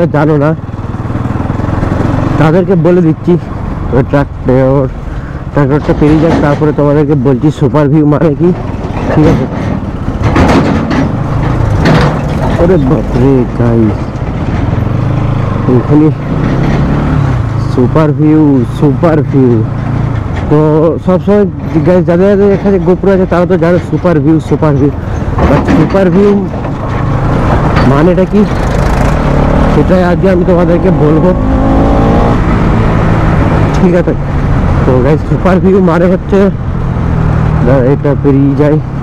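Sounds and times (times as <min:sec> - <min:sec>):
motorcycle engine rumbling: 0:00.0 - 0:39.0
man's voice: 0:12.6 - 0:14.0, 0:29.7 - 0:31.6.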